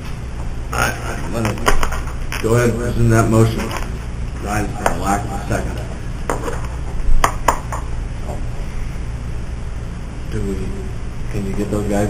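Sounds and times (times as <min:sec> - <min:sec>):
low room hum: 0:00.0 - 0:12.0
sharp knocks: 0:06.3 - 0:07.9.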